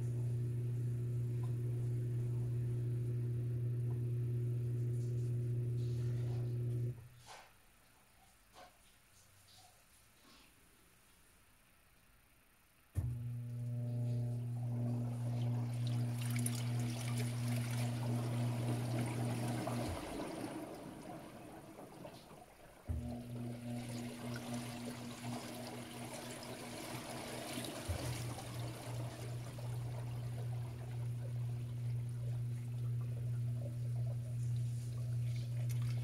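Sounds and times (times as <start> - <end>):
washing machine motor hum: 0.0 - 7.2, 13.0 - 36.0
water splashing and draining: 14.6 - 36.0
washing machine thump: 16.2 - 21.4, 22.9 - 31.0.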